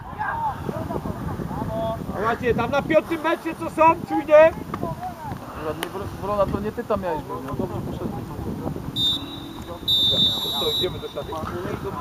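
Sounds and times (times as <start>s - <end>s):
referee's whistle blasts: 9.0s - 11.5s.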